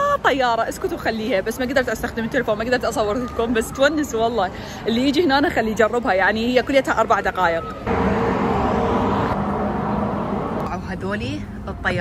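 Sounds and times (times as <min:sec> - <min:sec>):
low hum: 0:07.8 - 0:12.0
steady rushing noise: 0:07.9 - 0:12.0.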